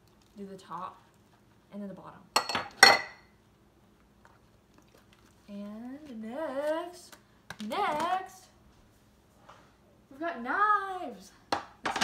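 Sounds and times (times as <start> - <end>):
glass clinking against dishware: 2.4 - 3.2.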